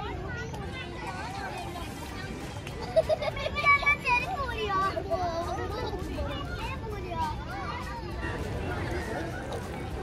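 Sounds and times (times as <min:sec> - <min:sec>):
children shouting and calling: 0:00.0 - 0:10.0.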